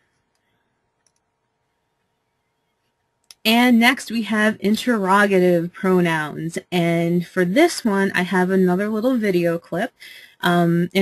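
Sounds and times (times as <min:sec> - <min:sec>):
computer mouse clicking: 0:00.2 - 0:01.3.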